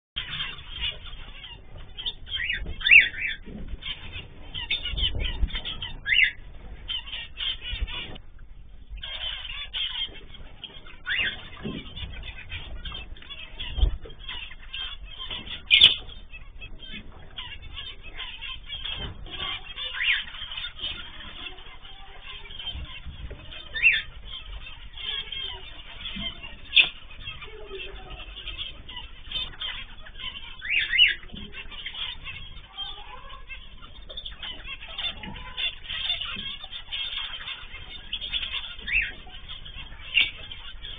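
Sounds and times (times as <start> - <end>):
pet birds chirping and calling: 0.2 - 40.9.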